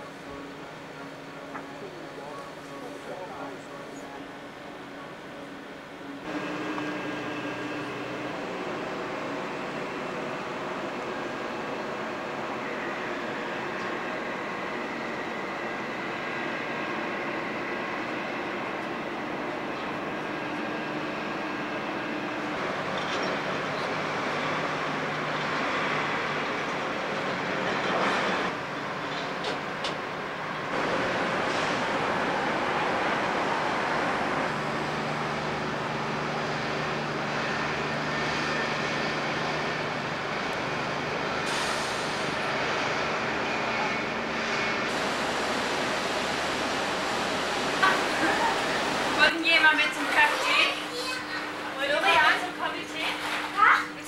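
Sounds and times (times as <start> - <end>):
ferry rumble and hiss: 0.0 - 37.4, 39.4 - 54.0
faint engine and ventilation hum: 0.0 - 42.5, 43.4 - 54.0.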